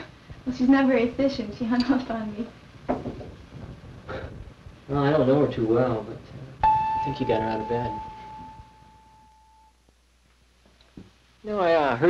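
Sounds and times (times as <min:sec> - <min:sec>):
faint high tone: 0:06.6 - 0:09.7.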